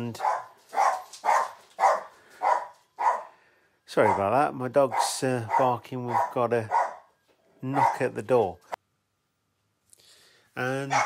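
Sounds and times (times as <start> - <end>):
dog barking: 0.0 - 3.4, 4.0 - 7.1, 7.7 - 8.1.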